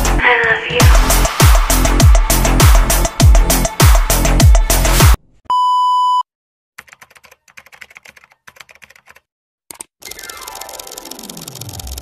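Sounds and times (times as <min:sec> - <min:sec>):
music: 0:00.0 - 0:05.2, 0:10.1 - 0:12.0.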